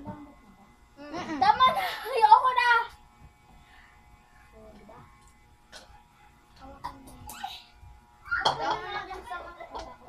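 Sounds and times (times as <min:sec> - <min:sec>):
faint electrical buzz: 0:00.0 - 0:10.0.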